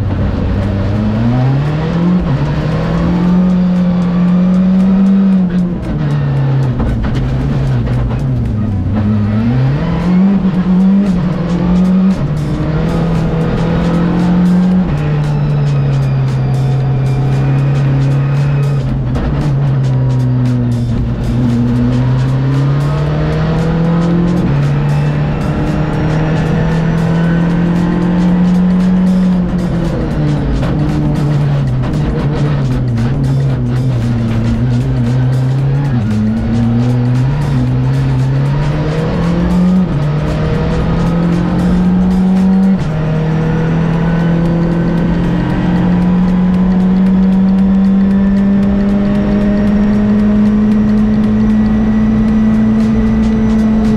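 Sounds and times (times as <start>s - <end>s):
gear changes: 0.0s - 53.9s
rally car engine revving: 0.0s - 53.9s.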